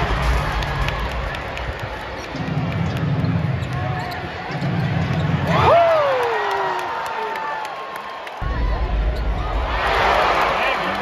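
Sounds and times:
arena crowd hum: 0:00.0 - 0:11.0.

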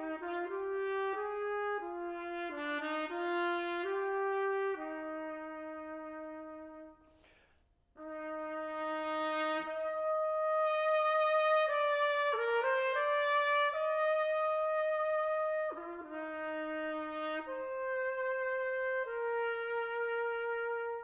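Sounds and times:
solo trumpet melody: 0:00.0 - 0:07.2, 0:08.0 - 0:21.0.

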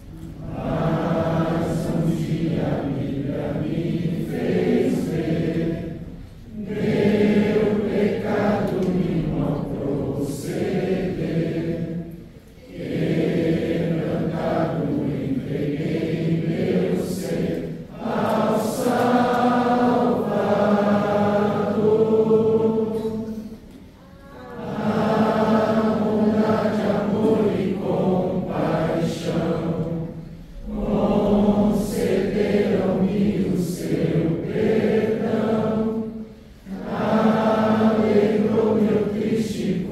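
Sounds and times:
congregation singing a hymn: 0:00.0 - 0:39.9.

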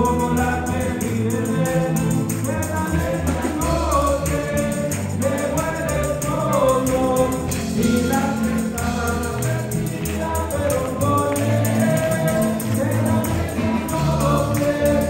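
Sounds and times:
band playing worship music: 0:00.0 - 0:15.0
many voices singing: 0:00.0 - 0:15.0
tambourine jingling: 0:00.0 - 0:15.0.

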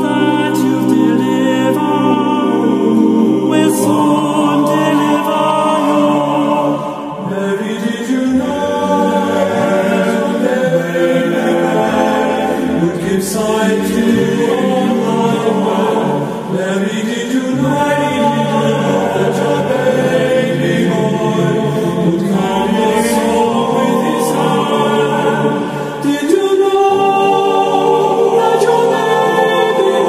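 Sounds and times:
choir singing chant-style: 0:00.0 - 0:30.0.

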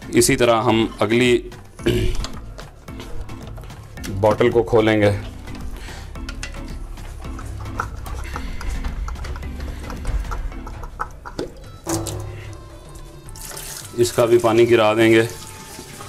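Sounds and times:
background music: 0:00.0 - 0:16.0
water splashing: 0:11.9 - 0:16.0.

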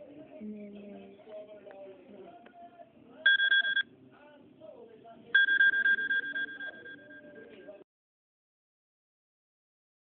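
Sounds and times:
electronic alert beeps: 0:03.3 - 0:03.9, 0:05.4 - 0:07.8.

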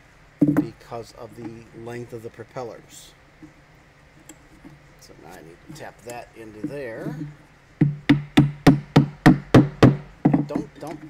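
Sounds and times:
hammer tapping wooden dowel: 0:06.6 - 0:11.0.

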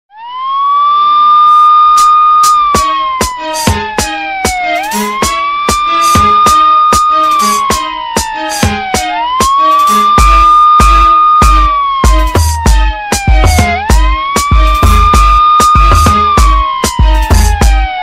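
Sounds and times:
emergency siren wailing: 0:00.1 - 0:18.0
music with steady drum beat: 0:02.4 - 0:18.0.

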